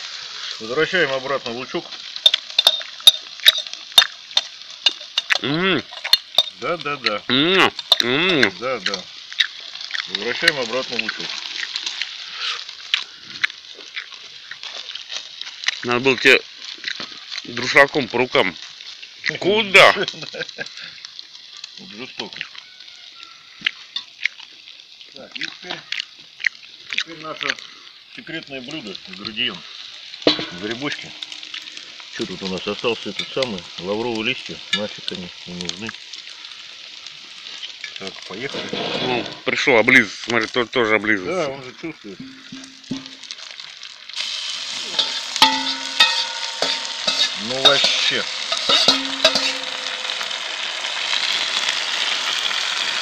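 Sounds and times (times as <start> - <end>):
meat and onions sizzling: 0.0 - 53.0
metal spoon clinking: 2.2 - 6.6, 7.8 - 8.1, 30.3 - 31.4, 44.9 - 50.4.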